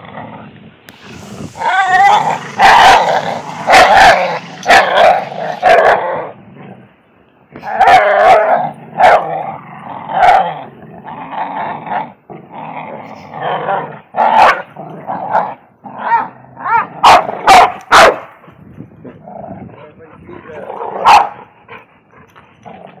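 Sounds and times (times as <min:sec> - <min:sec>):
dogs play-growling: 0:00.0 - 0:06.9, 0:07.5 - 0:23.0
dogs barking loudly: 0:00.9 - 0:06.4, 0:07.6 - 0:10.7, 0:13.1 - 0:23.0.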